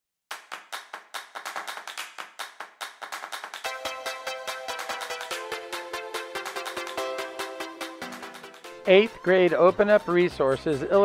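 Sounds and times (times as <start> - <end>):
sharp hand claps: 0.3 - 3.9.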